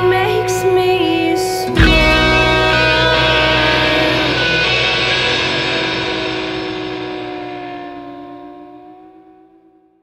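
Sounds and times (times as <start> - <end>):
electric guitar chord ringing: 0.0 - 9.8.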